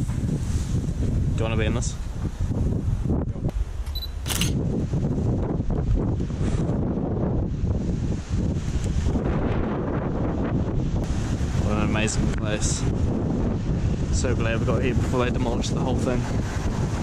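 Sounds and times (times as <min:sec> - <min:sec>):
wind rumbling on microphone: 0:00.0 - 0:17.0.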